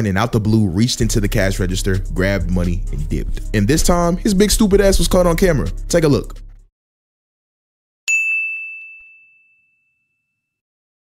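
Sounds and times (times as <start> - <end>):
bell-like ding: 8.1 - 10.6.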